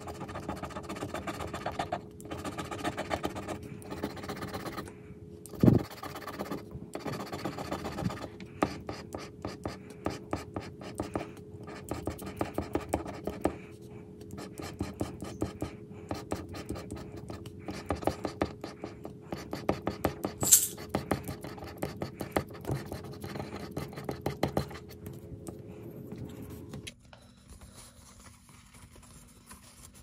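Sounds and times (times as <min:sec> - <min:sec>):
scratching a lottery ticket: 0:00.0 - 0:04.9, 0:05.6 - 0:13.6.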